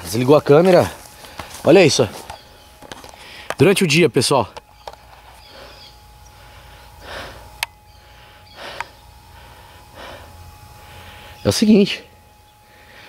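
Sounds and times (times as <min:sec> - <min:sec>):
faint steady tone: 0:04.4 - 0:13.0
person breathing close to microphone: 0:05.4 - 0:11.4, 0:12.6 - 0:13.0
sharp clicks: 0:07.6 - 0:07.8.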